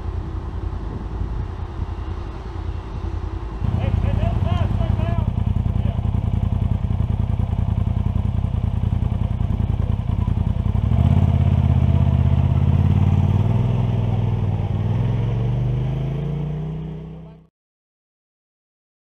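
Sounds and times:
deeper engine pulling away: 0.0 - 17.5
quad bike engine idling: 3.0 - 15.5.

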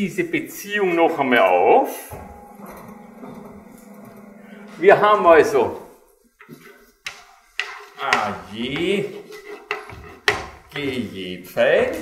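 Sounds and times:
faint low hum: 2.1 - 5.9.

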